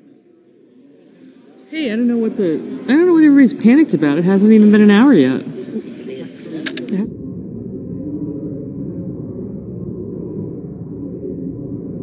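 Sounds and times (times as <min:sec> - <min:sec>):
murmur of people talking: 0:00.0 - 0:07.3.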